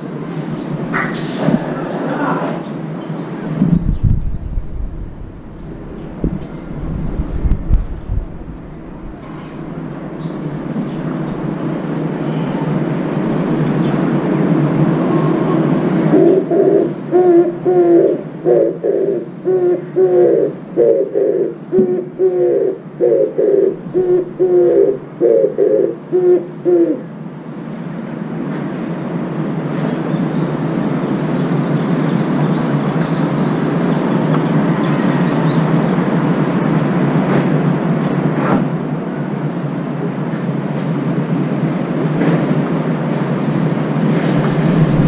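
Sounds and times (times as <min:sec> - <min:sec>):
rumbling background noise: 0:00.0 - 0:45.0
dove cooing: 0:00.9 - 0:02.8, 0:14.9 - 0:27.1.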